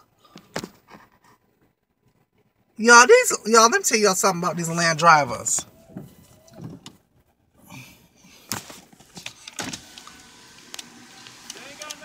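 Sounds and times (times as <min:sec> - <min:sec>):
car cabin noise: 0:08.7 - 0:12.0.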